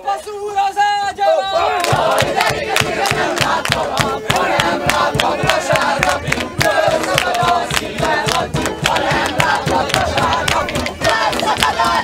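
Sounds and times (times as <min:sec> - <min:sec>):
group singing and shouting: 0:00.0 - 0:12.0
music: 0:01.8 - 0:12.0
sharp percussive strikes: 0:01.8 - 0:12.0.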